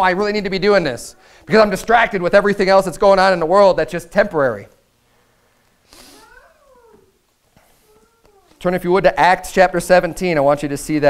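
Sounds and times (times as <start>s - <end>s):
faint high wavering cry: 6.0s - 7.2s.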